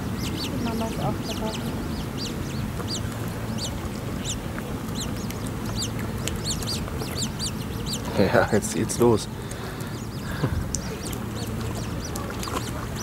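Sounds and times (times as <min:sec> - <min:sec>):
chicks giving high begging peeps: 0:00.0 - 0:13.0
low background noise: 0:00.0 - 0:13.0.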